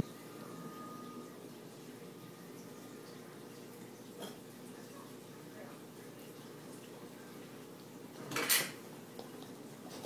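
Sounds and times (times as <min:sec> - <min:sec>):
dishes and cutlery clattering: 0:04.2 - 0:04.4, 0:08.2 - 0:08.8.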